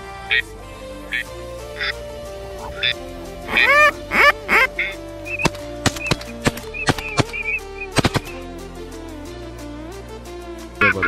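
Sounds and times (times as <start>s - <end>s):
background music with drone: 0.0s - 11.0s
ducks quacking loudly: 2.6s - 5.0s
sharp percussive hits: 5.4s - 8.4s.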